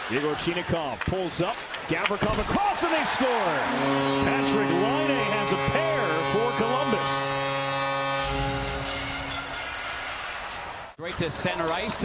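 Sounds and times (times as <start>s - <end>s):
crowd noise: 2.5s - 7.3s
arena goal horn: 2.9s - 10.2s
person speaking: 3.8s - 7.2s.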